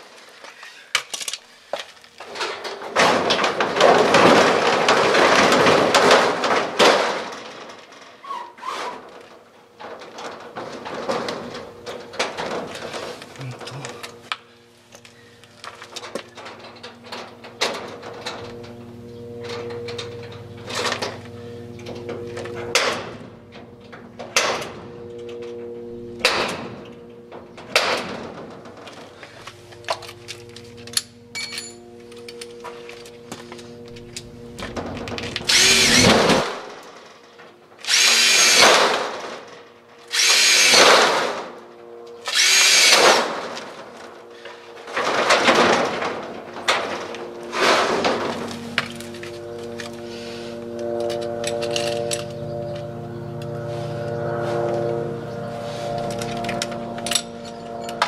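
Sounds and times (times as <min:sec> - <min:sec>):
power drill whine: 0:29.2 - 0:37.0, 0:37.8 - 0:39.2, 0:40.1 - 0:41.4, 0:42.1 - 0:45.3.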